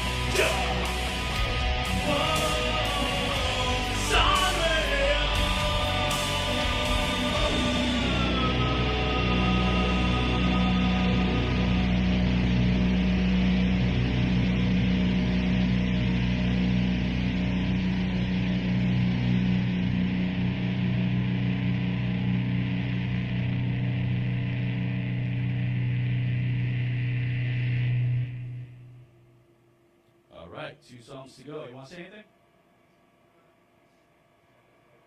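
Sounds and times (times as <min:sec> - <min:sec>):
distorted electric guitars droning: 0:00.0 - 0:30.2.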